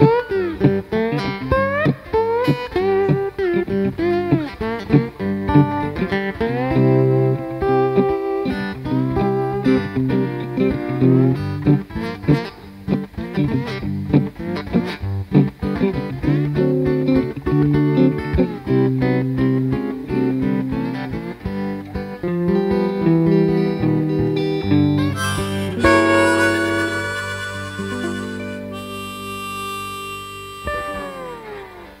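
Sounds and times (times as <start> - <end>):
blues guitar: 0.0 - 32.0
harmonica: 25.0 - 32.0.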